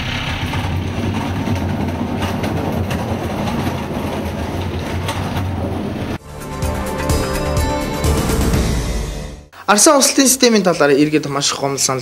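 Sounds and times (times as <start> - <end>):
garbage truck engine humming: 0.0 - 9.5.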